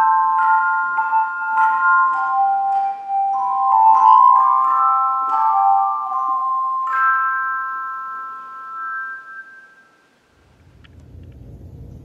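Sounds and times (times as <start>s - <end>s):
handbells ringing a chord: 0.0s - 10.2s
low rumble: 10.5s - 12.0s.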